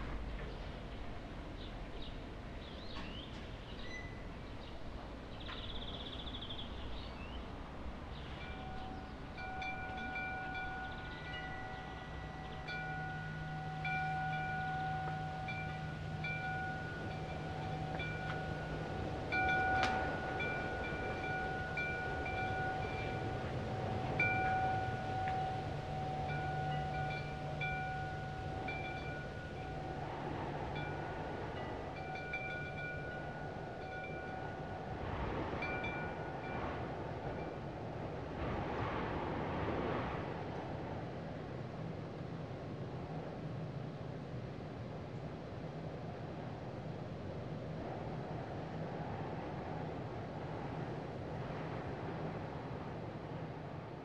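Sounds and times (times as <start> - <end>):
low hum: 5.5 - 37.0
chime-like tones: 8.4 - 35.0.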